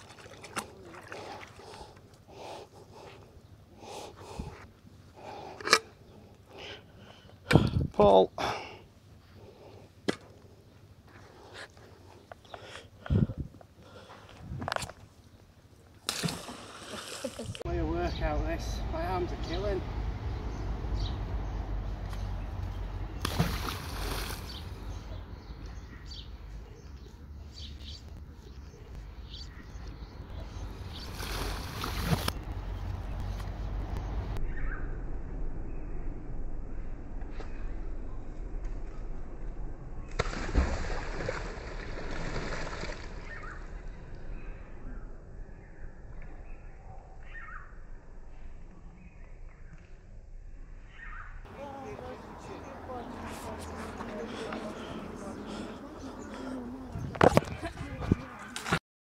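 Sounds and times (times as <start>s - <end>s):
water sloshing and splashing: 0.0s - 2.1s, 23.2s - 24.7s, 30.8s - 32.5s, 40.2s - 43.6s
steady low rumble: 17.4s - 50.8s.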